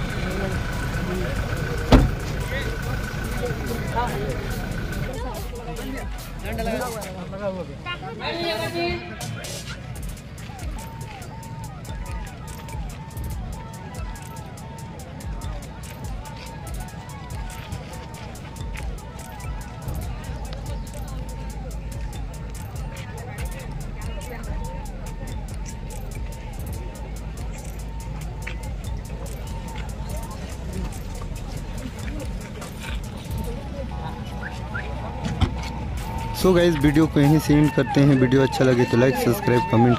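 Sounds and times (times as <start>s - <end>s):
rhythmic music beat: 0.0s - 7.4s, 8.5s - 39.9s
faint background voices: 0.0s - 37.4s
crowd chatter: 0.0s - 39.9s
suv engines rumbling: 0.0s - 39.9s.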